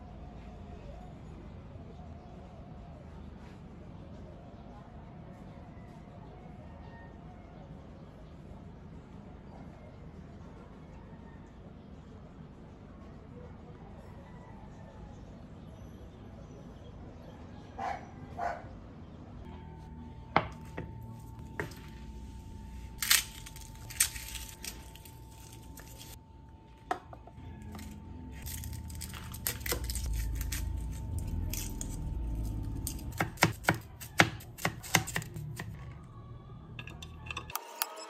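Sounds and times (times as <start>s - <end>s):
faint steady hum: 19.0s - 38.0s
low rumble: 19.5s - 33.4s
knife chopping on plastic board: 32.9s - 35.8s.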